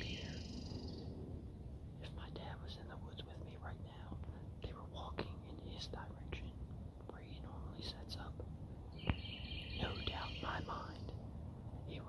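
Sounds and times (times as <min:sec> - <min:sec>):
man whispering: 0:00.0 - 0:00.6, 0:02.0 - 0:08.6, 0:09.8 - 0:12.0.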